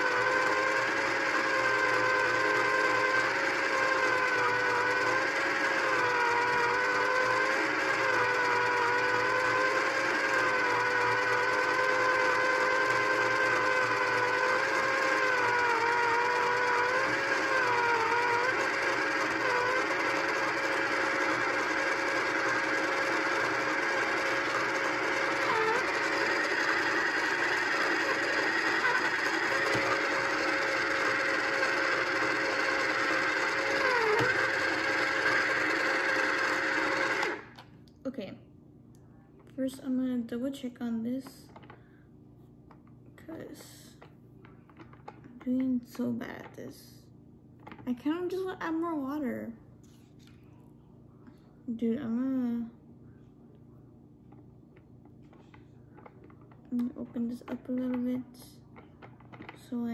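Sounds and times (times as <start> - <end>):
pottery wheel motor whining: 0.0 - 37.7, 54.2 - 59.9.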